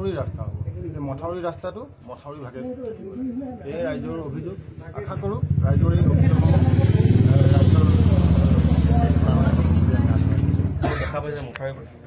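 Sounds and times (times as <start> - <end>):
engine running: 5.4 - 10.8.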